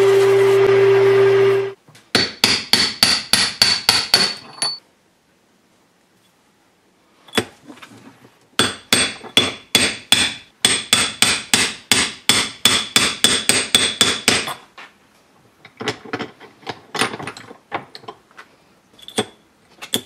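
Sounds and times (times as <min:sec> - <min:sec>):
hammer striking metal punch: 0:02.1 - 0:04.8, 0:08.6 - 0:14.6.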